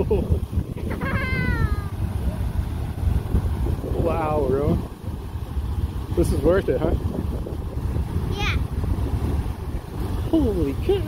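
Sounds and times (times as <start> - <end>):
geyser water rushing: 0.0 - 11.0.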